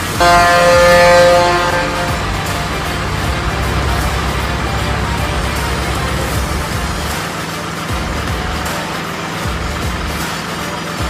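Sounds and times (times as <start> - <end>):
truck horn chord: 0.0 - 7.4
background music: 0.0 - 10.2
low rumble: 0.1 - 7.3.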